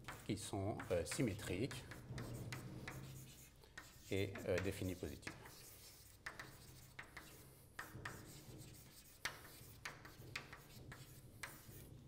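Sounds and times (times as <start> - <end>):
chalk scratching on blackboard: 0.0 - 12.0
chalk tapping on board: 0.0 - 12.0.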